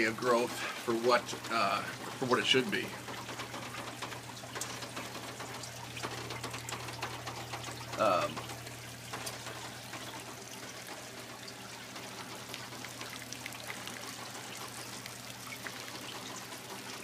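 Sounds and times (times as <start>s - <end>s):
water trickling and dripping: 0.0s - 17.0s.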